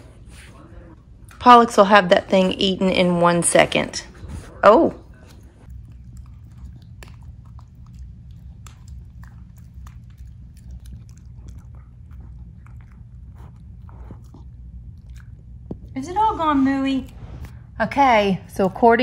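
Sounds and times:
dog chewing a chew stick: 5.1s - 16.0s.

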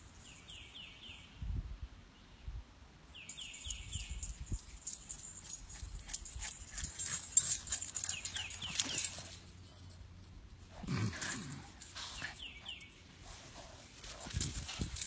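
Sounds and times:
bird chirps: 3.1s - 5.1s, 7.8s - 9.4s.

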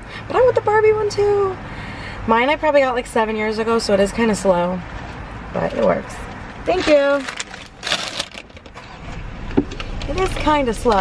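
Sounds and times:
paper bag rustling: 6.7s - 9.0s.

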